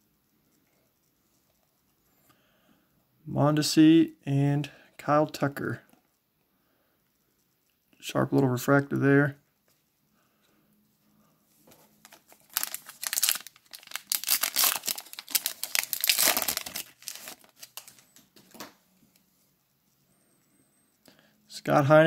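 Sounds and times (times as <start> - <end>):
card pack wrapper tearing and crinkling: 12.0 - 18.0.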